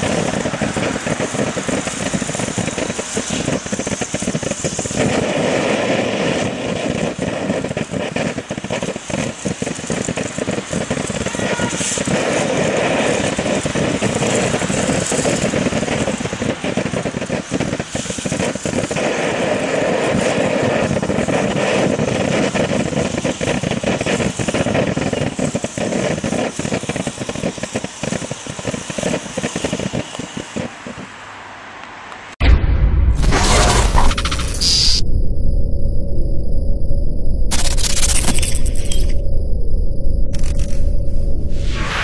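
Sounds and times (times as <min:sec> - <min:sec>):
firework crackling: 0:00.0 - 0:31.2, 0:37.4 - 0:42.0
firework fountain hissing: 0:00.0 - 0:31.4.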